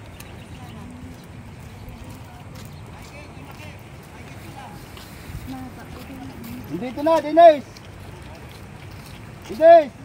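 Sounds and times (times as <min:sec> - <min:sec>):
wind rumble on microphone: 0:00.0 - 0:06.8
faint distant voices: 0:00.0 - 0:10.0
footsteps on concrete: 0:00.0 - 0:10.0.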